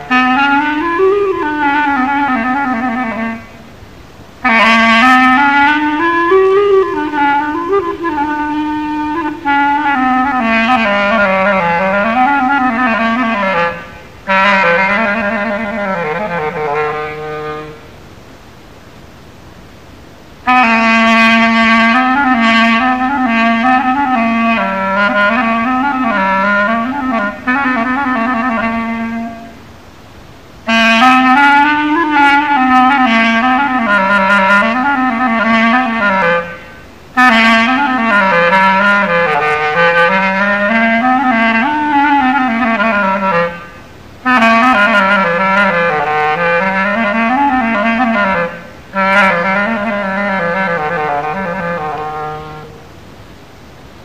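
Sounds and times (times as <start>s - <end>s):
solo melodic instrument improvising: 0.0s - 17.9s, 20.4s - 29.7s, 30.6s - 52.9s.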